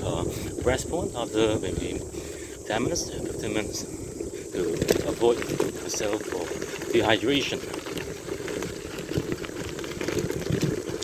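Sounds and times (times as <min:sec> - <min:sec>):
bicycle tyres crunching on gravel: 0:00.0 - 0:11.0
small clicks and rattles: 0:04.6 - 0:11.0.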